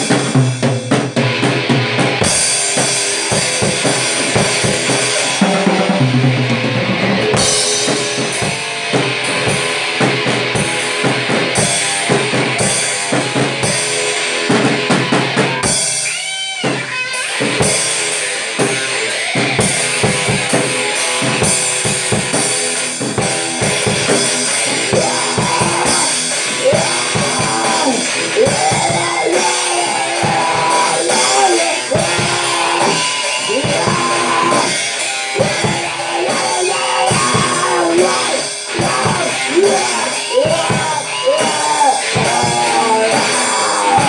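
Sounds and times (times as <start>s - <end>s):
drum kit: 0.0s - 44.0s
electric guitar bending notes: 0.0s - 44.0s.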